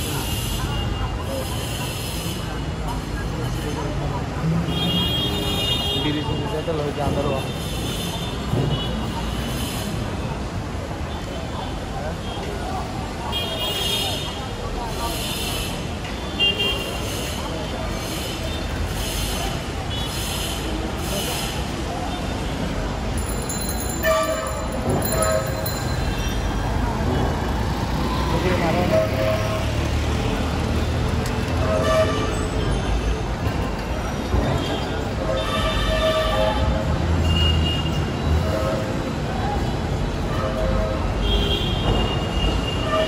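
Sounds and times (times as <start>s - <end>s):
people's voices: 0.0s - 43.0s
traffic rumble: 0.0s - 43.0s
vehicle horns honking: 23.8s - 26.6s, 31.6s - 32.8s, 34.5s - 39.1s, 40.2s - 43.0s.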